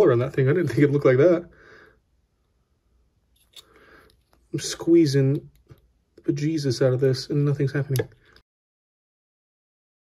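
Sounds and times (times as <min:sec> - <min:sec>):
man speaking: 0:00.0 - 0:01.6, 0:04.5 - 0:05.5, 0:06.2 - 0:08.2.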